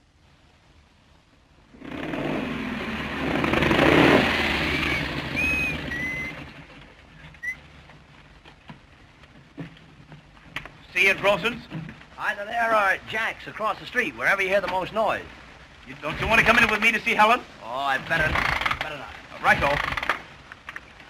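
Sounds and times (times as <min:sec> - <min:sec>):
motorcycle engine running: 0:01.8 - 0:06.7
short high whistle-like tones: 0:04.6 - 0:06.5, 0:07.4 - 0:07.6.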